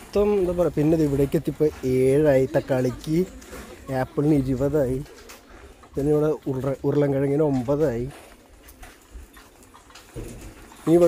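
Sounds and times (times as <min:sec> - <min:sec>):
man speaking: 0:00.0 - 0:03.3, 0:03.9 - 0:05.1, 0:06.0 - 0:08.2
open-air market background: 0:00.0 - 0:11.0.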